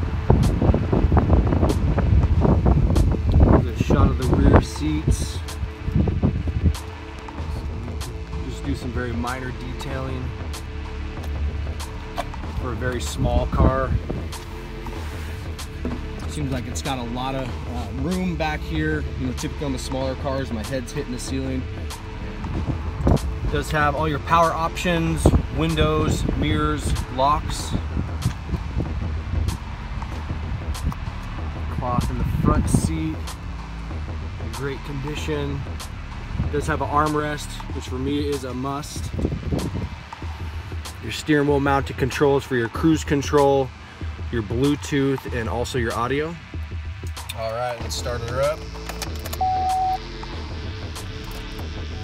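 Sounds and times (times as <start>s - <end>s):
low rumble: 0.0s - 41.1s
background music: 0.0s - 52.0s.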